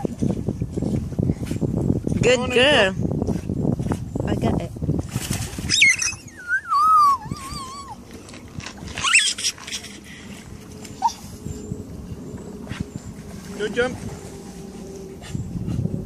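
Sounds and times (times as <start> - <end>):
dog whining: 5.7 - 8.1, 9.0 - 9.9, 10.9 - 11.3.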